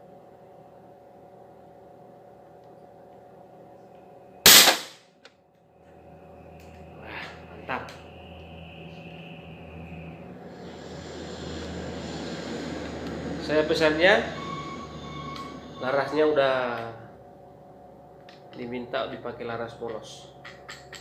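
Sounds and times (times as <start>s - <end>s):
air rifle shot: 4.5s - 5.0s.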